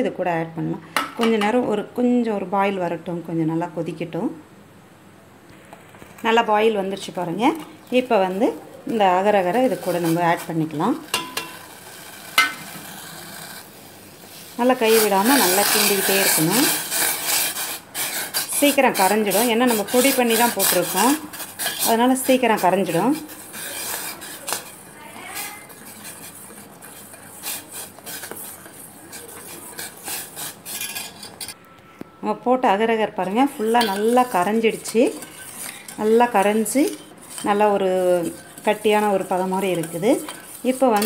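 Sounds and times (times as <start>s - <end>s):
water boiling in a pot: 7.3s - 31.6s, 33.7s - 41.0s
spoon clinking against pot: 11.1s - 11.6s, 33.6s - 37.6s.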